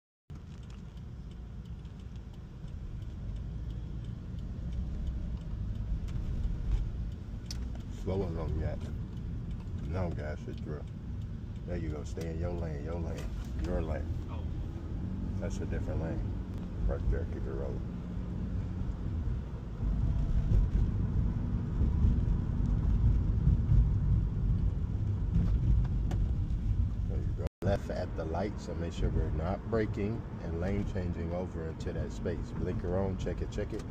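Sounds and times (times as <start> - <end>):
road and tyre rumble: 0.3 - 33.9.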